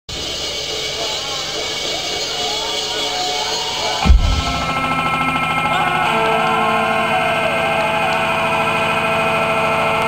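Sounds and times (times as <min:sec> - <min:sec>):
sound system drone and hiss: 0:00.1 - 0:10.0
crowd voices: 0:00.2 - 0:10.0.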